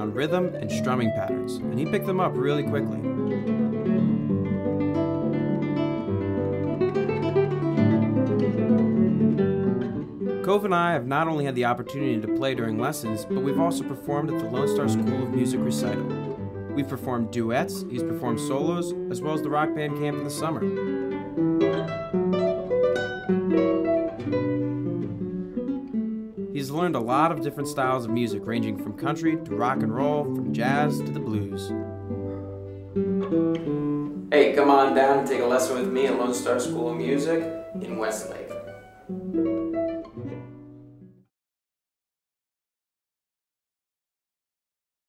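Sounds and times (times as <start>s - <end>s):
acoustic guitars strumming chords: 0.0s - 41.2s.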